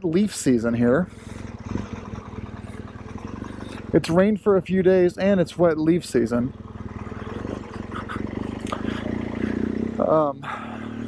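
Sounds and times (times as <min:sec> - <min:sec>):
motorcycle engine running at low revs: 0:00.1 - 0:11.0.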